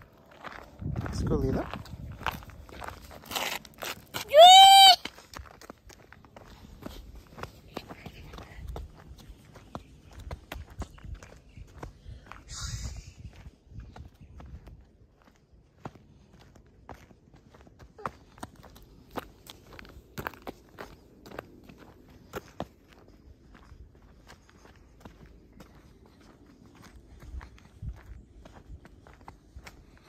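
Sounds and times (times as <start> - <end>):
low rumble: 0.0 - 3.3
footsteps on paved path: 0.0 - 30.0.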